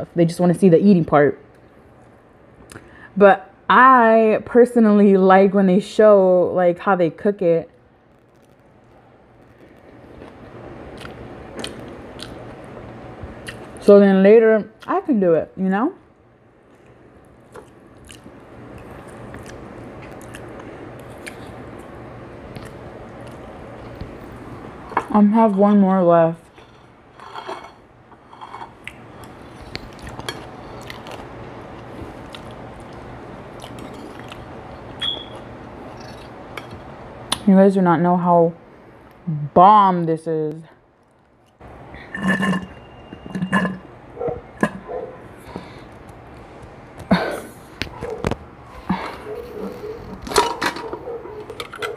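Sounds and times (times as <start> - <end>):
wet chewing: 10.1 - 12.4, 17.5 - 21.6, 28.8 - 37.4.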